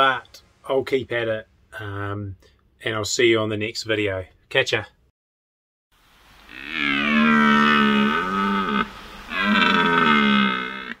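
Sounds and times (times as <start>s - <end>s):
deer stag roaring: 6.5s - 11.0s.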